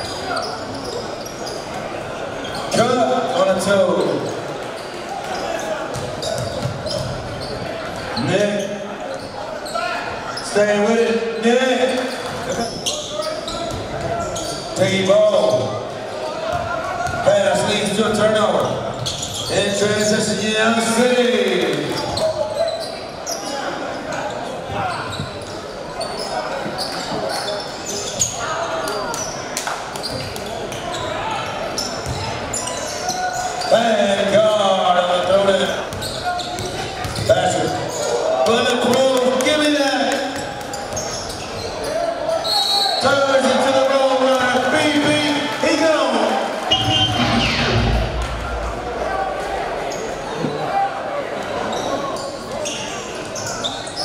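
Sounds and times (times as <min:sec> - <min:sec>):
crowd voices echoing: 0:00.0 - 0:54.0.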